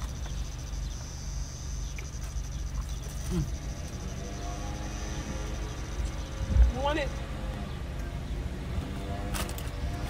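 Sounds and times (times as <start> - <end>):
insects chirping: 0.0 - 7.6.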